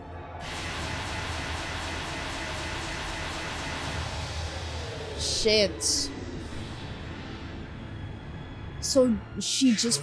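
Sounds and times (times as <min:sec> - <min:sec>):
dramatic soundtrack music: 0:00.0 - 0:10.0
dense rush with deep rumble: 0:03.4 - 0:09.4.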